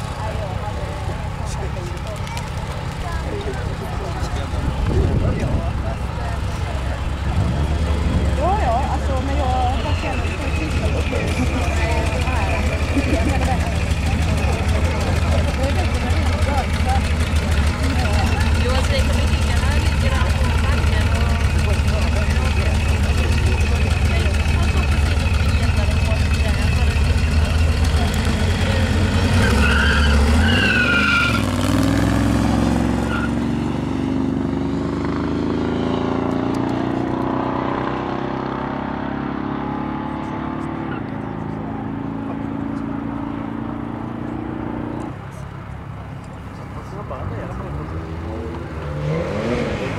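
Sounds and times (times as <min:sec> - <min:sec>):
drag-race cars idling: 0:00.0 - 0:34.0
cars accelerating away: 0:00.0 - 0:49.9
tyre squeal: 0:29.2 - 0:31.6, 0:33.0 - 0:33.5.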